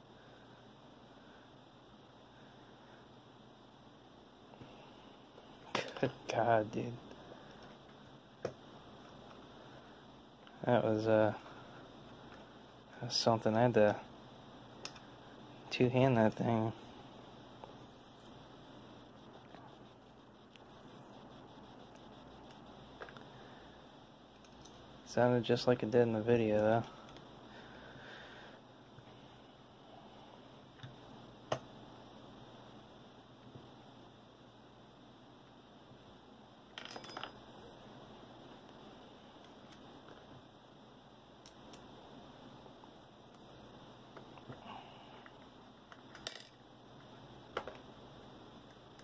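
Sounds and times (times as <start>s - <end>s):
faint hiss: 0.0s - 36.7s
faint room noise: 0.0s - 49.0s.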